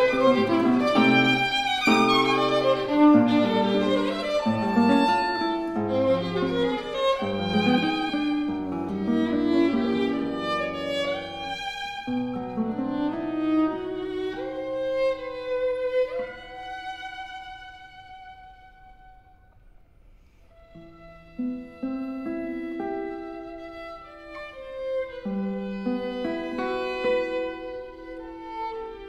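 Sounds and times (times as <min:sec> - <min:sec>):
violin: 0:00.0 - 0:19.5, 0:20.5 - 0:29.0
classical guitar: 0:00.0 - 0:29.0.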